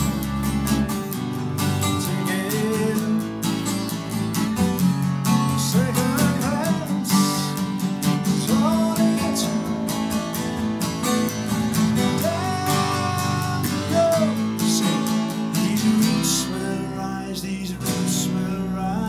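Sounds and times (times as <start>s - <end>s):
wavering melodic phrases: 0.0s - 17.8s
strummed acoustic guitar: 0.0s - 19.0s.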